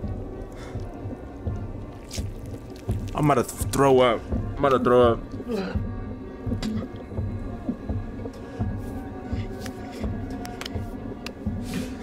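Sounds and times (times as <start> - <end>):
low droning horror music: 0.0 - 12.0.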